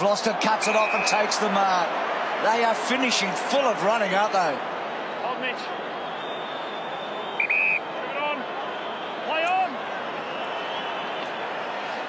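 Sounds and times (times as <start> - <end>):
stadium crowd noise: 0.0 - 12.0
shrill whistle blast: 6.0 - 7.9.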